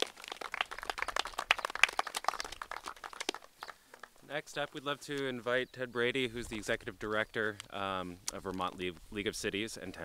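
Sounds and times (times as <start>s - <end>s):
crowd applauding: 0.0s - 4.2s.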